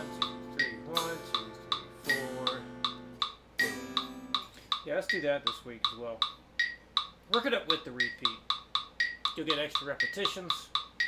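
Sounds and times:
electric guitar chord ringing: 0:00.0 - 0:04.4
metronome clicking: 0:00.0 - 0:11.0.

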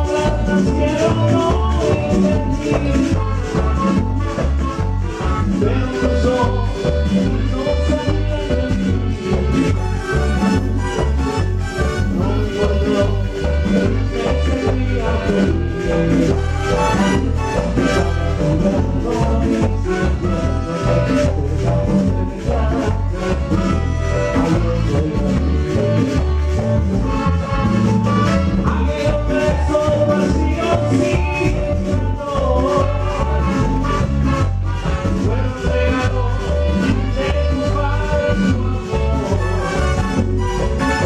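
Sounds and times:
live band playing salsa music: 0:00.0 - 0:41.0.

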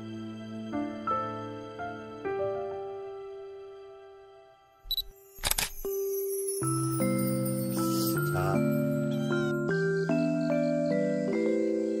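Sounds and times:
soft background music: 0:00.0 - 0:12.0
camera shutter click: 0:04.9 - 0:05.9.

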